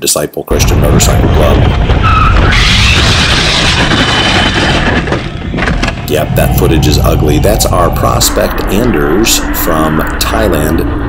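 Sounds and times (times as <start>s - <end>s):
low rumble: 0.5s - 11.0s
motorcycle scraping along road: 2.0s - 8.9s.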